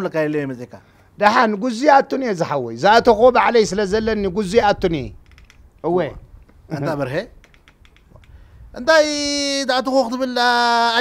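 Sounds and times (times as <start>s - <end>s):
man talking animatedly: 0.0s - 5.2s, 5.8s - 7.4s, 8.8s - 11.0s
faint clicks: 5.2s - 6.6s, 7.4s - 8.5s.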